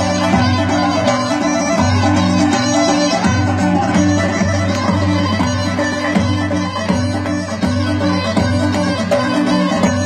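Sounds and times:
folk band playing dance tune: 0.0 - 10.0.

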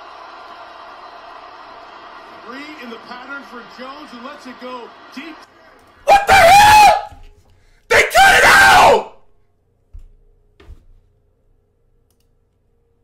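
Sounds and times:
man screaming: 6.1 - 7.2, 7.9 - 9.2
computer mouse clicks: 12.0 - 12.6.

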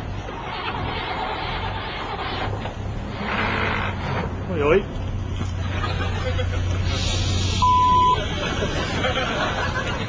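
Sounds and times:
electronic beep: 7.6 - 8.2.

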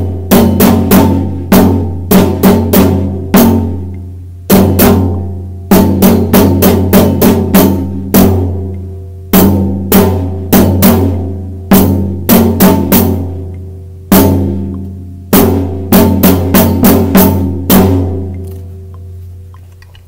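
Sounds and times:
marching snare drum: 0.0 - 3.9, 4.5 - 8.7, 9.3 - 13.5, 14.1 - 18.3
marching bass drum: 0.0 - 19.2.

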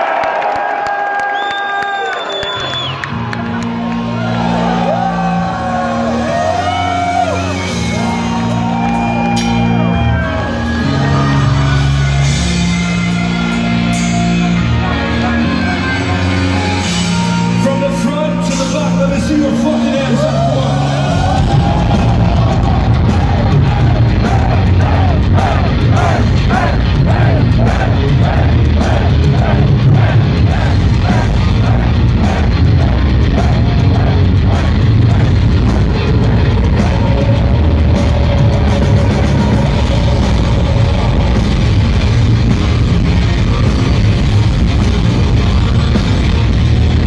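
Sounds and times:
metal band playing: 3.1 - 47.0
lead guitar melody: 9.3 - 21.6.

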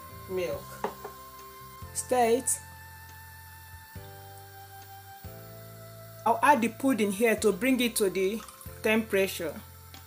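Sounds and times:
sustained background music: 0.0 - 10.0.

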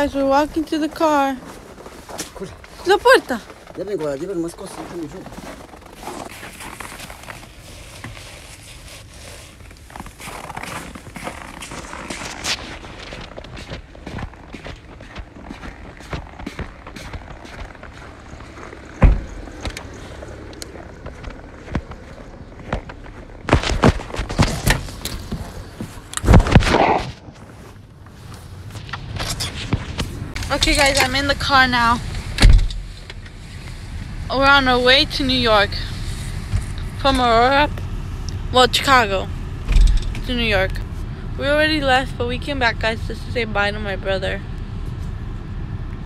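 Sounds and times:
footsteps: 0.0 - 37.4
sharp thud: 19.0 - 19.4.

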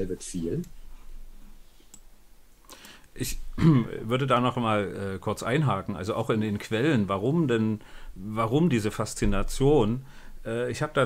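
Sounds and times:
person speaking: 0.0 - 0.8
faint clicks: 1.9 - 3.2.

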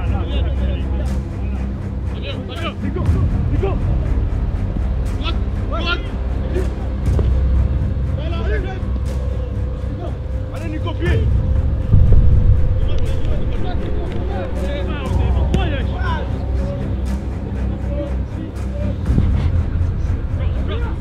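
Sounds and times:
loud low rumble: 11.4 - 17.0.

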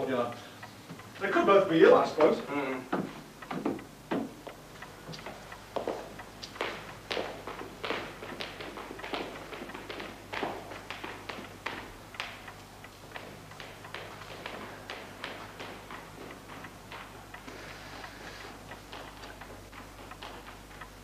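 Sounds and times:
footsteps walking: 0.8 - 21.0.

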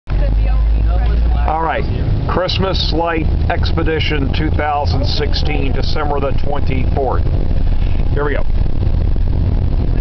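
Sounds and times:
car engine and tyres rumble: 0.0 - 10.0.

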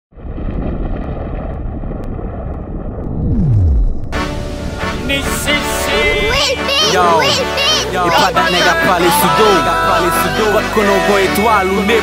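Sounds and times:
heavy low whoosh: 0.2 - 6.5
falling tone sweep: 3.0 - 5.6.

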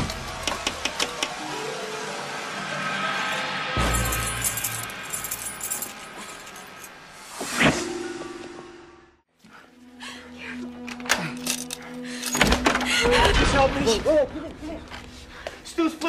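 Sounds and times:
tense horror film score: 0.0 - 16.0.

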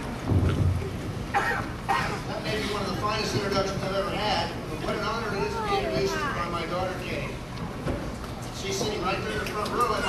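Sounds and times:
low rumbling handling thump: 0.2 - 1.3.

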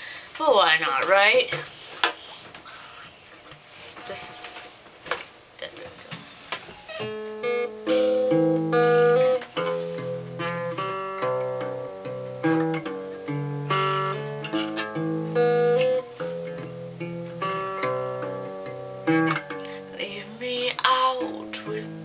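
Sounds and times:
acoustic guitar chords: 6.8 - 22.0
guitar bass line: 6.9 - 19.9.

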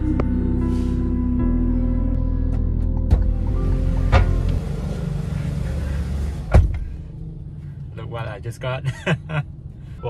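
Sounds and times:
background music: 0.0 - 6.5
car door shutting: 3.1 - 7.0.

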